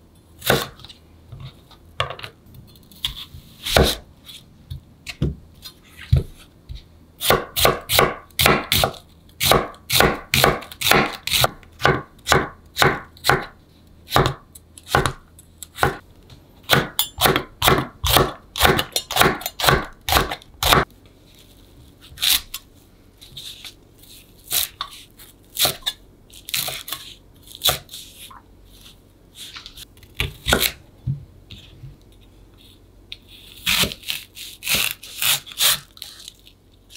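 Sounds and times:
knife chopping on wooden board: 0:03.0 - 0:04.0, 0:07.2 - 0:15.2, 0:15.8 - 0:16.0, 0:16.7 - 0:20.9, 0:30.2 - 0:30.8.

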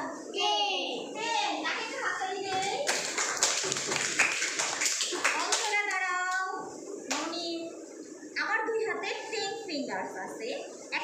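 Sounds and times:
children clapping: 0:02.5 - 0:06.4.

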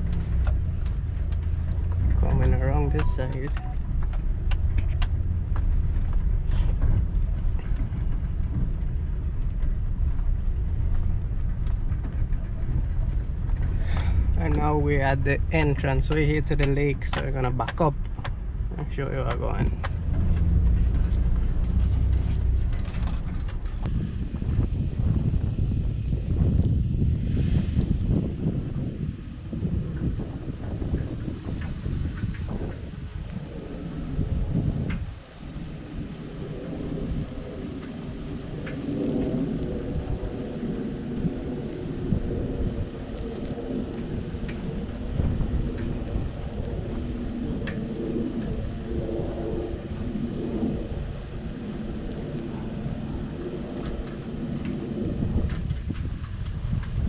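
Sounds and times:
wind rumble on microphone: 0:00.0 - 0:57.0.

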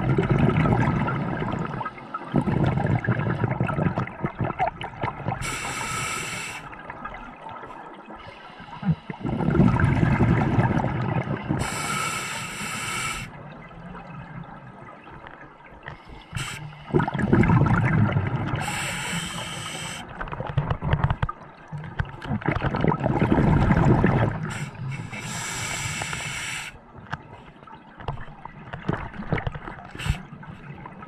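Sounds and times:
gurgling exhaled bubbles: 0:00.0 - 0:08.1, 0:08.7 - 0:26.2
regulator inhalation hiss: 0:05.4 - 0:06.7, 0:11.6 - 0:13.4, 0:16.1 - 0:16.9, 0:18.6 - 0:20.1, 0:24.4 - 0:26.8.

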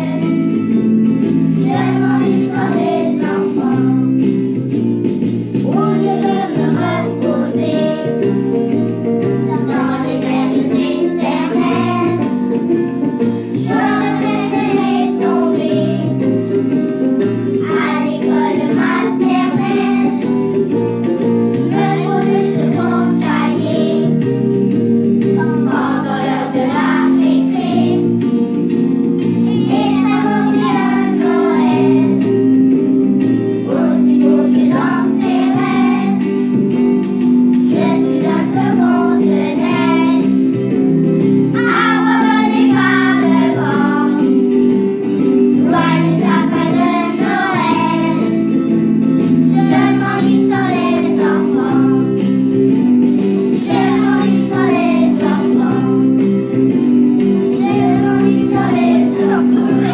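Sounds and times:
young children singing: 0:00.0 - 0:00.7, 0:01.5 - 0:04.3, 0:05.6 - 0:08.4, 0:09.4 - 0:12.4, 0:13.5 - 0:16.4, 0:17.4 - 0:20.4, 0:21.7 - 0:24.2, 0:25.2 - 0:28.1, 0:29.4 - 0:32.3, 0:33.6 - 0:36.4, 0:37.6 - 0:40.6, 0:41.5 - 0:44.5, 0:45.5 - 0:52.4, 0:53.5 - 0:56.3, 0:57.5 - 0:59.9.

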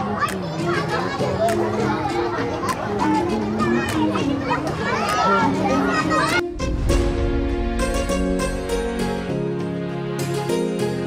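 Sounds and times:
children shouting while playing: 0:00.0 - 0:06.4
background music: 0:00.0 - 0:11.0.

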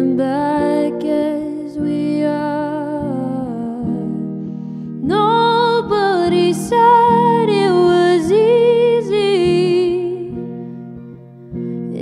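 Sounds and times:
clean electric guitar picking: 0:00.0 - 0:12.0.

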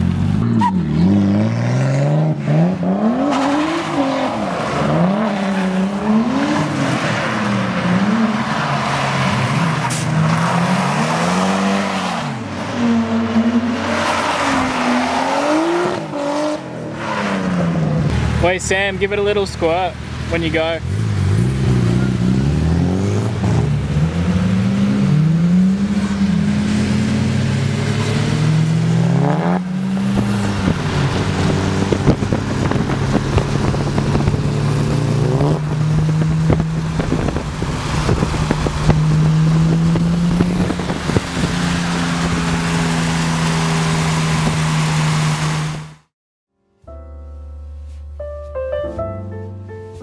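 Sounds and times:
car engine revving: 0:00.0 - 0:19.2, 0:20.0 - 0:46.1.

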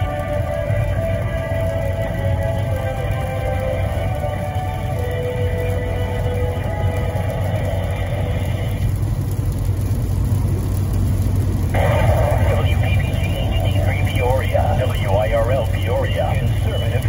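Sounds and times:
radio music through car speakers: 0:00.0 - 0:09.5, 0:11.6 - 0:17.0
steady low hum: 0:00.0 - 0:17.0
person speaking: 0:11.8 - 0:17.0.

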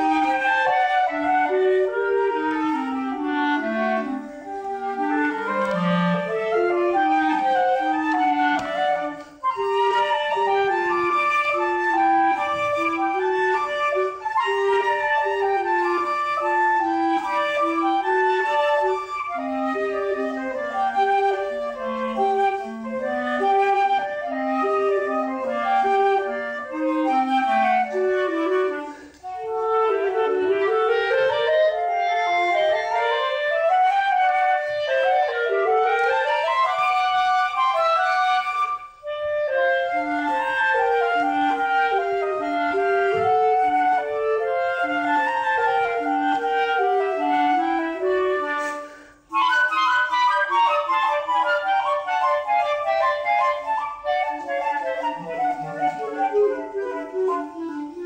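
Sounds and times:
flute and clarinet duet: 0:00.0 - 0:58.0.

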